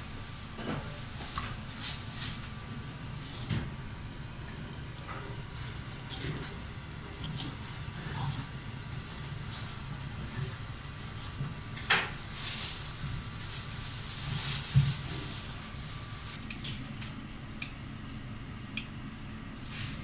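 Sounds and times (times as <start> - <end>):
low background hum: 0.0 - 20.0.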